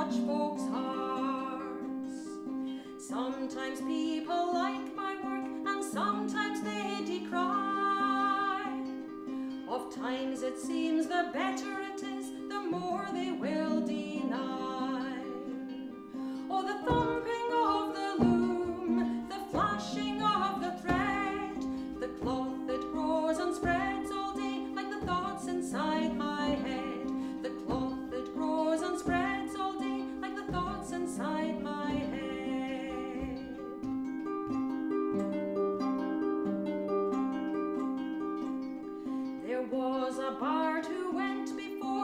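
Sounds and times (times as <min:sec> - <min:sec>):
woman singing folk song: 0:00.0 - 0:42.0
harp plucked: 0:02.7 - 0:38.8
frame drum beat: 0:18.2 - 0:32.4.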